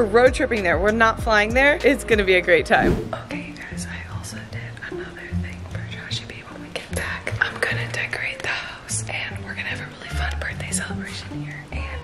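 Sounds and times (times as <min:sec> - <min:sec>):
woman whispering: 0:03.2 - 0:12.0.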